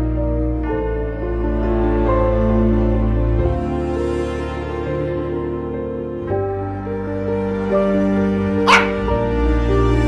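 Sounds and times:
slow soft background music: 0:00.0 - 0:10.0
dog bark: 0:08.6 - 0:09.2.

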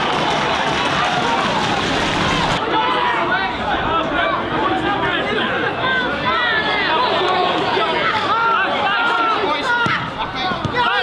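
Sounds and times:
crowd chatter: 0:00.0 - 0:11.0
people shouting: 0:00.0 - 0:11.0.

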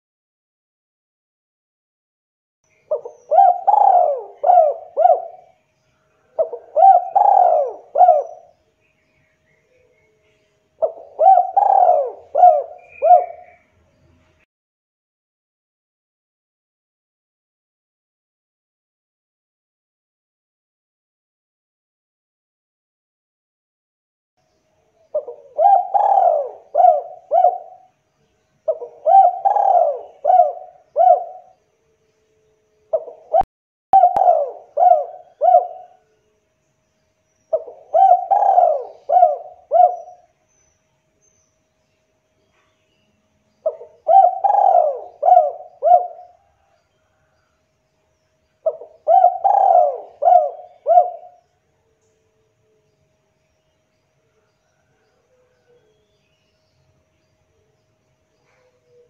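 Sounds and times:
dove cooing: 0:02.8 - 0:05.6, 0:06.2 - 0:08.5, 0:10.8 - 0:13.6, 0:25.1 - 0:27.9, 0:28.6 - 0:31.6, 0:32.9 - 0:36.1, 0:37.5 - 0:40.4, 0:43.6 - 0:47.3, 0:48.6 - 0:51.4, 0:54.7 - 0:56.0, 0:58.4 - 0:59.0.

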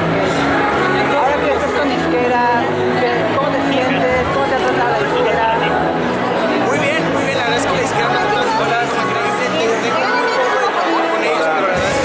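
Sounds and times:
background music: 0:00.0 - 0:12.0
crowd chatter: 0:00.0 - 0:12.0
man talking: 0:06.6 - 0:10.2.

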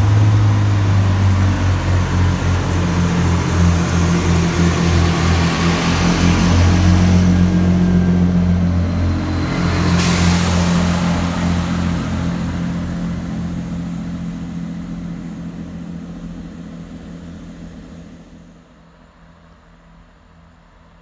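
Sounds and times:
diesel train engines droning: 0:00.0 - 0:21.0
rushing hiss: 0:09.1 - 0:13.8.

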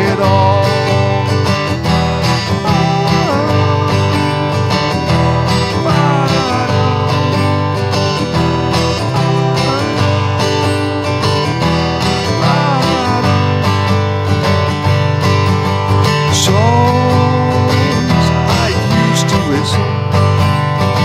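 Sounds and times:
person singing: 0:00.0 - 0:11.1, 0:12.1 - 0:14.0, 0:16.2 - 0:19.9
acoustic guitar strumming: 0:00.0 - 0:21.0.

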